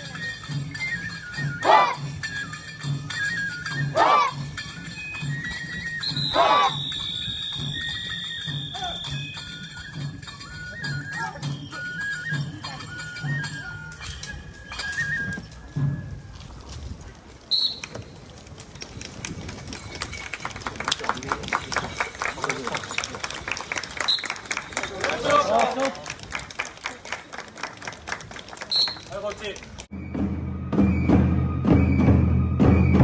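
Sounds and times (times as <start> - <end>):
festival flute and drum music: 0.0 - 18.2, 21.5 - 25.6, 28.5 - 33.0
crowd chatter: 8.7 - 29.9
rapid hand claps: 18.8 - 29.9.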